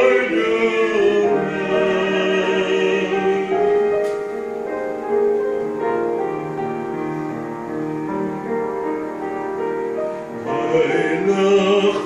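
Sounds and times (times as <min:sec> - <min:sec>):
man singing with vibrato: 0:00.0 - 0:03.7, 0:10.4 - 0:12.0
piano: 0:00.0 - 0:12.0.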